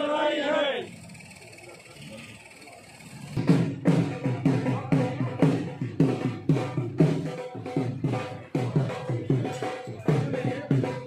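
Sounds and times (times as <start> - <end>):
outdoor traffic noise: 0.0 - 4.2
murmur of voices: 0.0 - 11.0.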